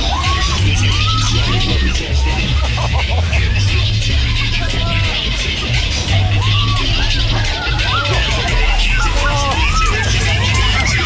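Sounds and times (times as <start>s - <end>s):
loud ride music with heavy bass: 0.0s - 11.0s
riders shouting: 0.0s - 11.0s.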